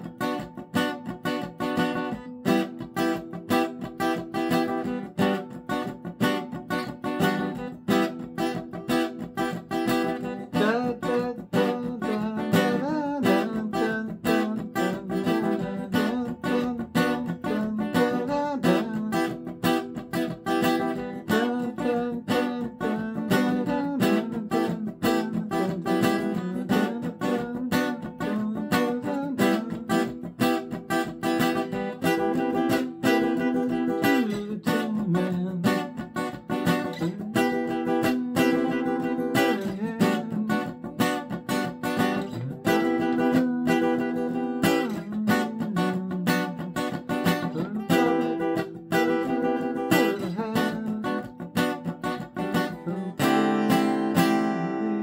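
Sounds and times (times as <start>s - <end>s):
acoustic guitar strumming: 0.0s - 55.0s.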